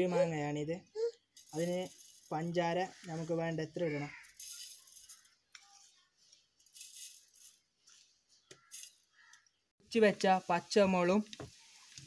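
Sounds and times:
sugar granules rattling: 1.4s - 2.6s, 4.1s - 5.4s, 6.5s - 8.0s, 8.6s - 9.4s.

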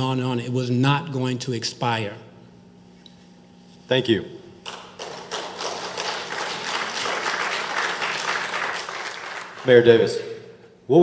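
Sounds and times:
audience applauding: 4.7s - 10.0s.

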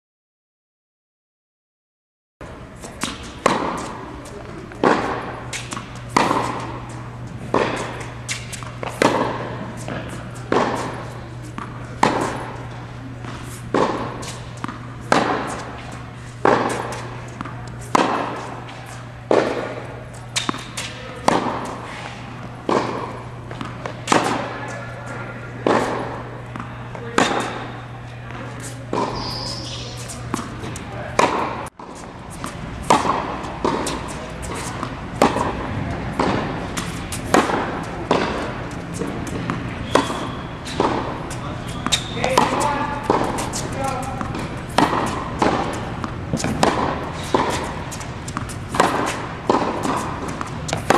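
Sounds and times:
tennis ball hit by rackets: 2.8s - 50.9s.

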